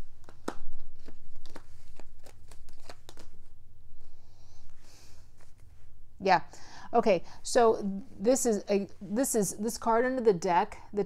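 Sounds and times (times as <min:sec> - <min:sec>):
cards being shuffled: 0:00.0 - 0:03.5.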